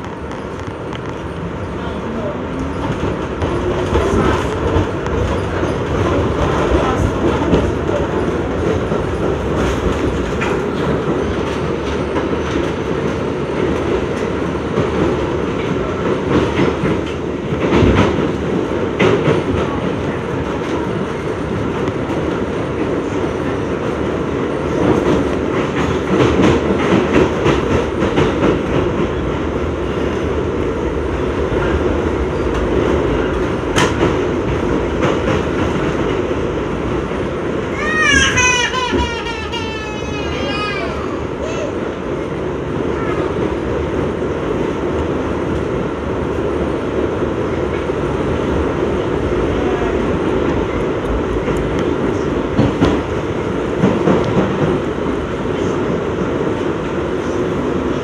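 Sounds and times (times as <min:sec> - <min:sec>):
subway wheels rumbling: 0:00.0 - 0:58.0.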